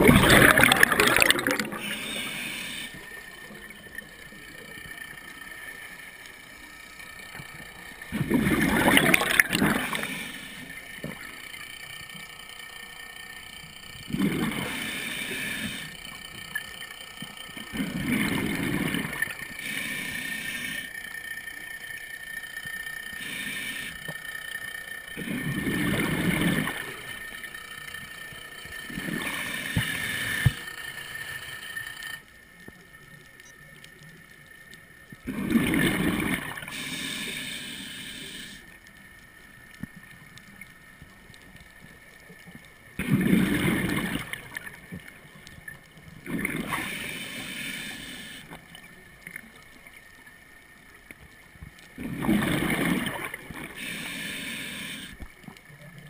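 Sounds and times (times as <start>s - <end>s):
faint steady hiss: 0.0s - 56.0s
underwater exhaust bubbles gurgling: 0.0s - 56.0s.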